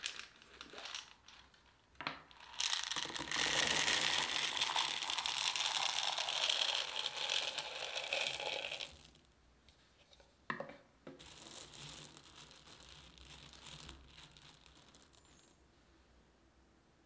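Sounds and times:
pie weights rattling into tin: 2.4 - 9.1.

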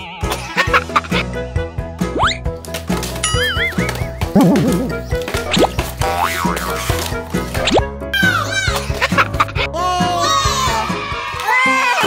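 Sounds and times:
upbeat children's music: 0.0 - 12.0.

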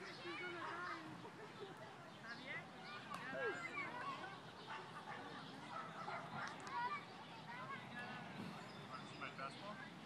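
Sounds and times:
bird calls: 0.0 - 10.0.

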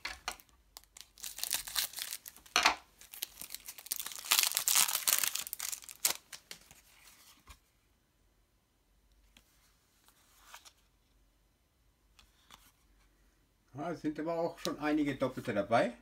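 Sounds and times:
foil packet tearing and crinkling: 0.3 - 6.4.

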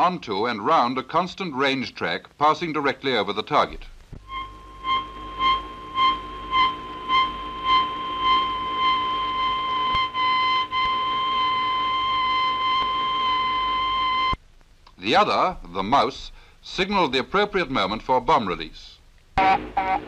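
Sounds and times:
high-pitched guidance tone beeping: 4.2 - 14.4.

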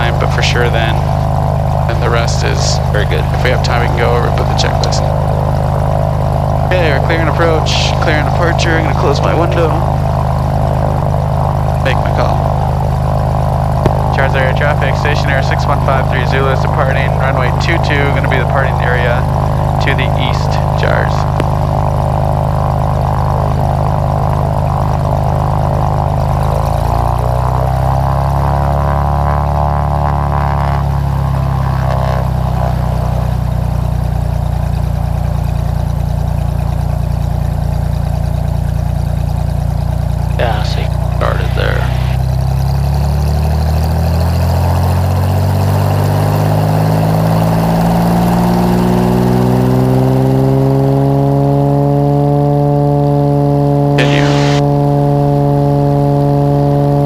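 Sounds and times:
propeller plane engine: 0.0 - 57.0.

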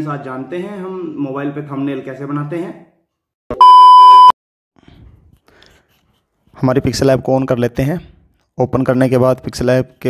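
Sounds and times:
loud electronic beep: 3.5 - 4.3.

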